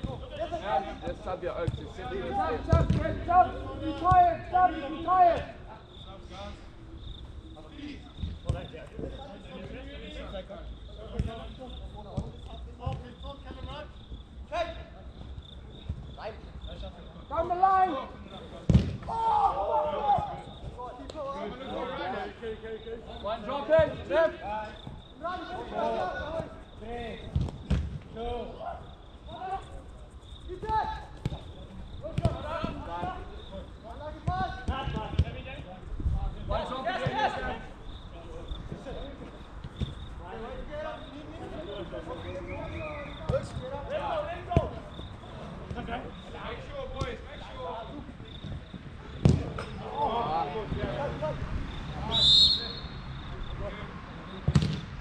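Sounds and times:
distant players shouting: 1.8s - 6.6s, 17.3s - 22.4s, 36.5s - 54.8s
players shouting: 2.0s - 5.9s, 17.3s - 22.4s, 23.1s - 27.2s, 36.5s - 37.7s, 49.0s - 53.9s
football being struck: 2.7s - 3.1s, 18.7s - 19.0s, 49.2s - 49.7s, 54.5s - 54.9s
football kick thuds: 2.7s - 3.2s, 18.7s - 19.1s, 27.3s - 28.0s, 32.1s - 32.8s, 48.4s - 49.7s, 54.4s - 54.9s.

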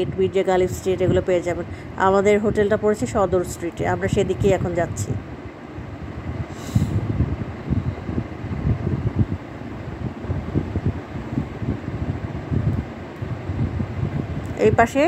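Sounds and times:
short hiss: 6.5s - 7.0s.

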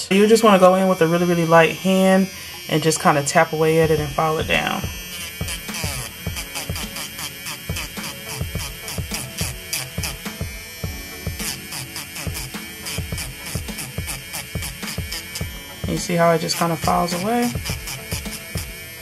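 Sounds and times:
electric nail drill whine: 0.0s - 19.0s
hip-hop music with steady beat: 0.1s - 19.0s.

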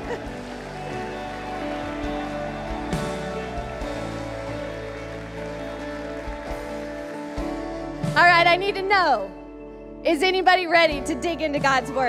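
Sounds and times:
sustained chords music: 0.0s - 10.0s
electric guitar: 0.0s - 10.1s.

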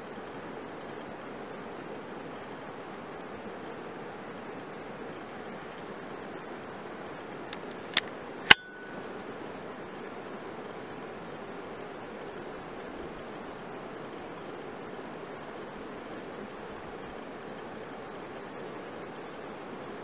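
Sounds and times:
sharp clicks: 7.5s - 9.0s.

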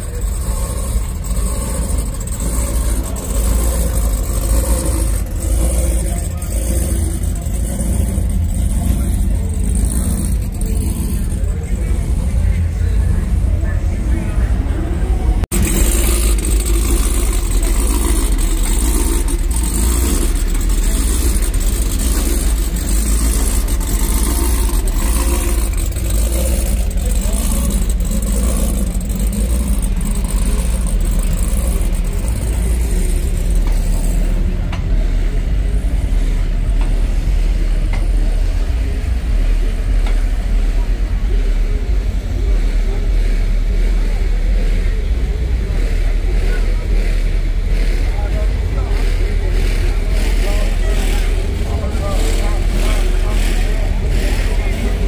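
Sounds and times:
low rumble with steady beat: 0.0s - 55.0s
voices: 0.0s - 55.0s.

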